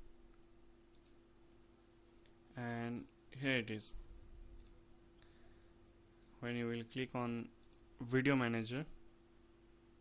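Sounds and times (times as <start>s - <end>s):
steady low hum: 0.0s - 10.0s
faint computer mouse click: 0.3s - 1.6s, 4.6s - 4.9s, 7.6s - 7.9s.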